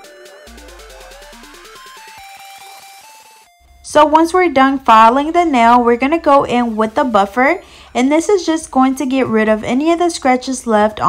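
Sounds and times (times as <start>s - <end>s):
electronic synth music: 0.0s - 11.0s.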